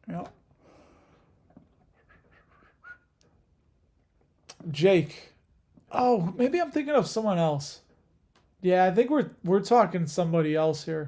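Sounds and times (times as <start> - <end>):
faint breathing: 0.5 - 2.9.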